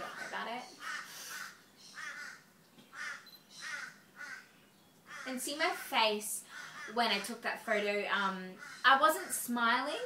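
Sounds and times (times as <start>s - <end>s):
bird cawing: 0.0s - 4.5s, 5.1s - 5.4s, 6.4s - 7.3s, 8.6s - 9.4s.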